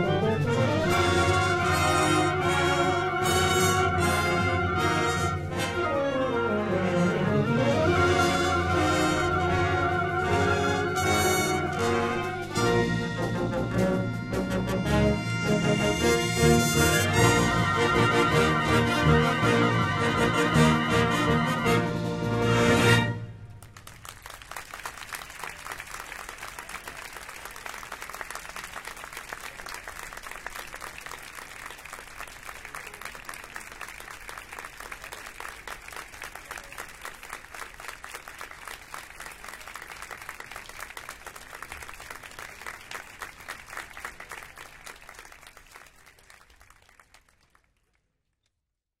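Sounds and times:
audience applause: 23.6 - 48.0.

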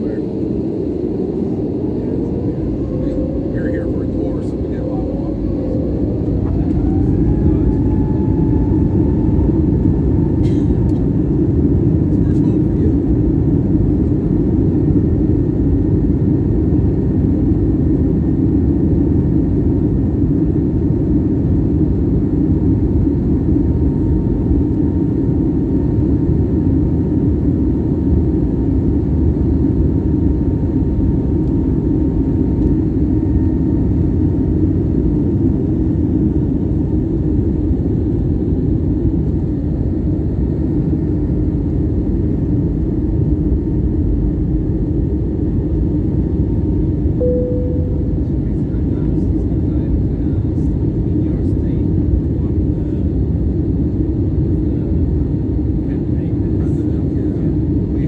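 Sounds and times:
jet engines whining: 0.0 - 28.0, 30.3 - 58.0
steady roar of plane: 0.0 - 58.0.

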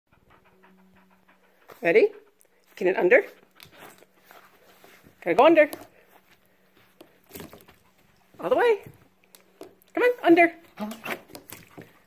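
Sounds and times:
dog panting: 0.1 - 5.2, 7.6 - 9.1.

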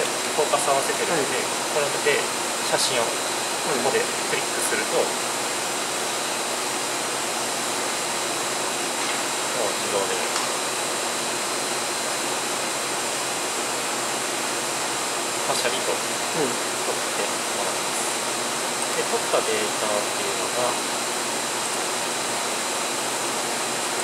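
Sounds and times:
fan-like ventilation hiss: 0.0 - 24.0.

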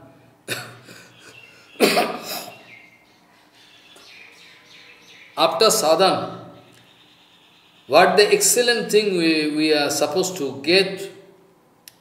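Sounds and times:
person coughing: 0.5 - 1.1, 1.8 - 2.6.

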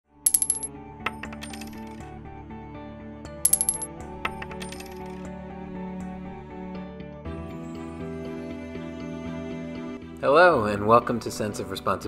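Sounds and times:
coins clinking and dropping: 0.3 - 2.0, 3.5 - 5.2
jingle music: 0.3 - 2.0, 3.5 - 5.2.

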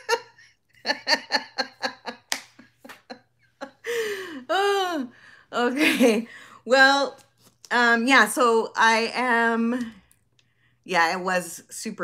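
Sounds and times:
woman laughing: 0.0 - 5.1.

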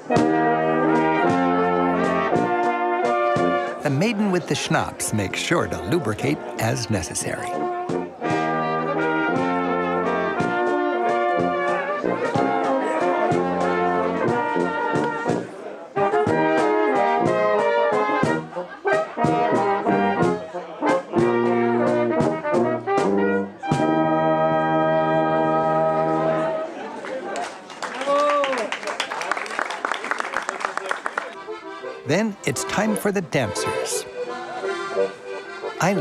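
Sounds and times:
brass band playing folk tune: 0.0 - 26.8, 31.3 - 36.0.

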